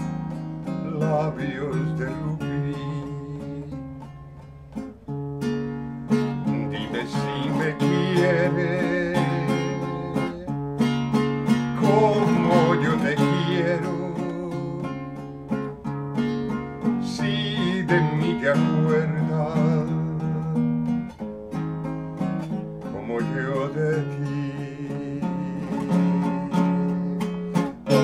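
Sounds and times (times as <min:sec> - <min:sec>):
man singing love song: 0:00.0 - 0:04.9, 0:06.1 - 0:21.2, 0:22.1 - 0:28.0
strummed classical guitar: 0:00.0 - 0:28.0.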